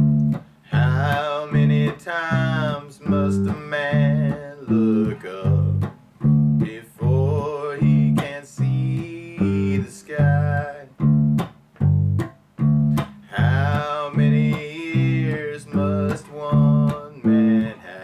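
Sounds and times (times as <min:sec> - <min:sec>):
electric bass guitar: 0:00.0 - 0:18.0
guitar: 0:00.0 - 0:18.0.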